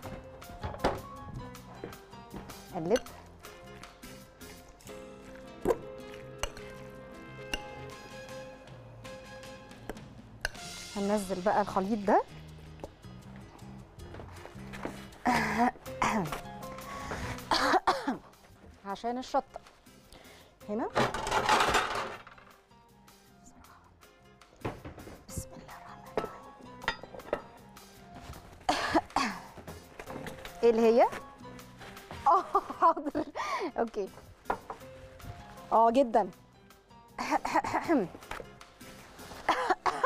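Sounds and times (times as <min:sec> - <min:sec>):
background music: 0:00.0 - 0:40.0
spoon clinking glass bowl: 0:06.4 - 0:06.9, 0:26.2 - 0:27.5
kitchenware clinking: 0:21.0 - 0:22.6, 0:26.1 - 0:27.6.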